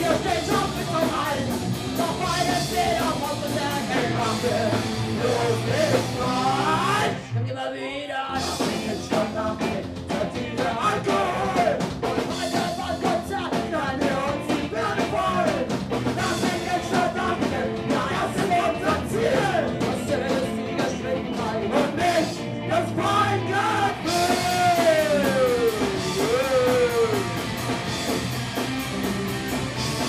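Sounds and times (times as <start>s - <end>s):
punk band playing: 0.0s - 7.3s, 8.3s - 30.0s.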